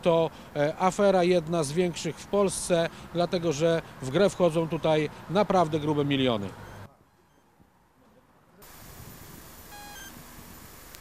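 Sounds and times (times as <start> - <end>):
outdoor street noise hum: 0.0 - 11.0
short high electronic beep: 9.7 - 10.2.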